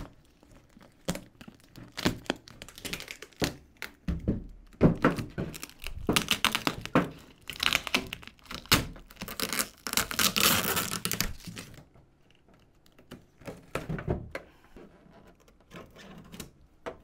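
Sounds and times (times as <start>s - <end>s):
tape and plastic film tearing: 0.0s - 4.0s, 5.0s - 11.9s
box cutter slitting tape: 7.4s - 11.7s.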